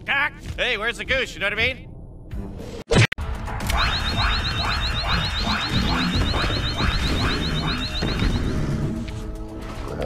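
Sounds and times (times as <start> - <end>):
pulsing electronic warble: 3.6 - 8.9
rapid rising electronic chirps: 3.7 - 8.9.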